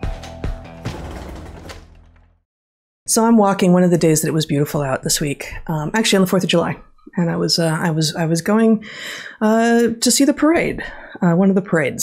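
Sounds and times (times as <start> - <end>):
sharp percussive hits: 0.0 - 2.2.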